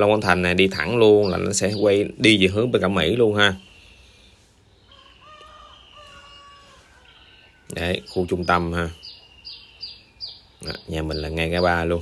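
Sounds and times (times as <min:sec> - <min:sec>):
rooster crowing: 0:04.8 - 0:08.1.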